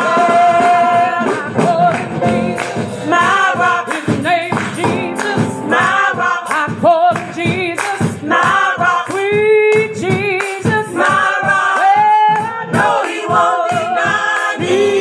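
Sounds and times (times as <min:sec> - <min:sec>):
gospel choir singing: 0:00.0 - 0:15.0
steady beat: 0:00.0 - 0:15.0.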